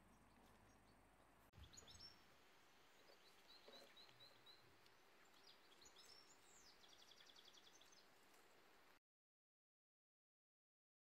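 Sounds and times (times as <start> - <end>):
outdoor background hiss: 0.0 - 9.0
bird chirps and trill: 1.6 - 2.2.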